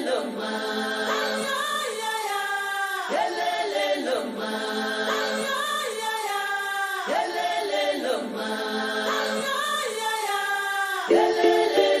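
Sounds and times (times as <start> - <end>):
choir singing a chant: 0.0 - 12.0.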